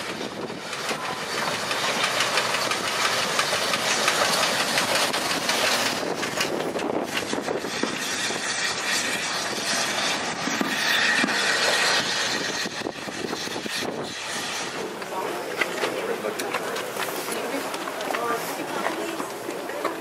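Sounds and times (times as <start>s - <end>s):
wheels clicking over rail joints: 0.0s - 12.1s, 12.8s - 20.0s
steam railcar rumbling on track: 0.0s - 20.0s.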